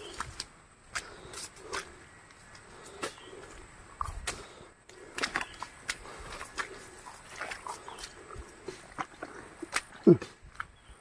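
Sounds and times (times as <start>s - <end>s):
footsteps on muddy path: 0.0s - 11.0s.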